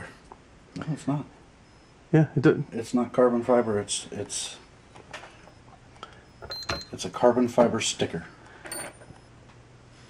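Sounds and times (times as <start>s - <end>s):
high electronic beep: 3.3s - 7.2s.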